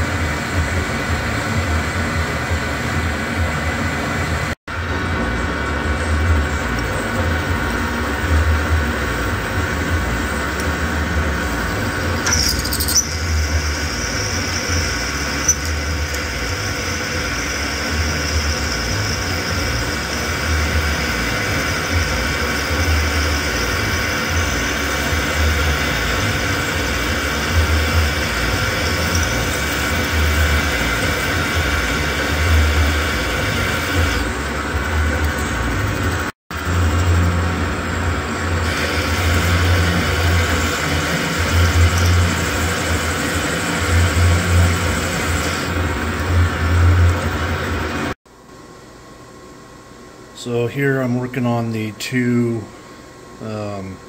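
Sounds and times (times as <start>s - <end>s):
metal lathe drilling with whine: 4.9s - 48.2s.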